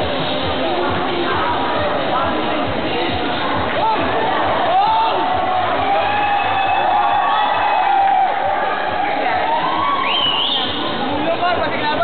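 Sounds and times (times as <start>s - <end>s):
crowd cheering and shouting: 0.9s - 12.0s.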